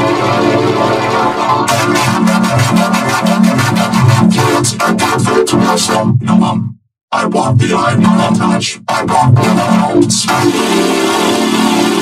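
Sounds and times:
synthesizer-like chords: 0.0 - 6.6, 7.2 - 12.0.

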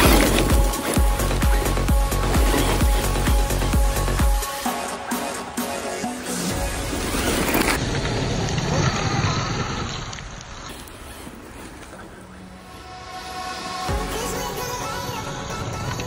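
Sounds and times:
tyres throwing stones: 0.0 - 4.3
rc truck driving on gravel: 0.0 - 4.7, 6.3 - 16.0
electronic background music: 0.0 - 7.8, 12.2 - 16.0.

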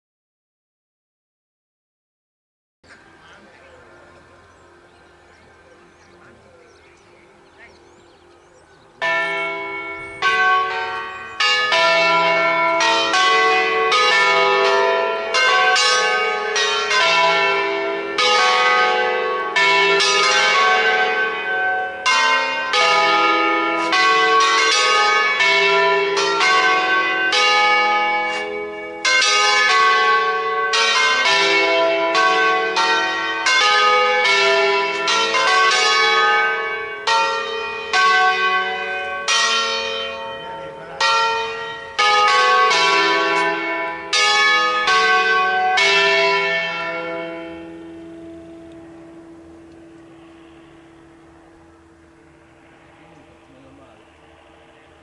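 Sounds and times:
church bells ringing: 3.0 - 55.0.

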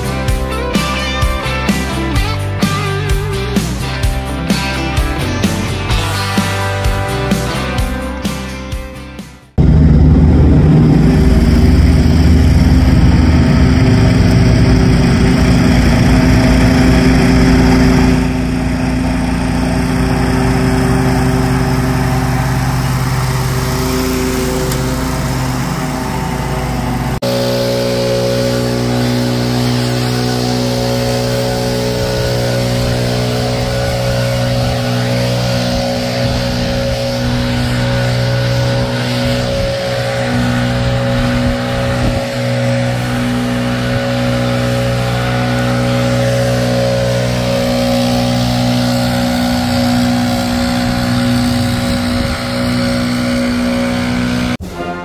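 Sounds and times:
mower engine running: 0.0 - 8.5, 9.5 - 55.0.

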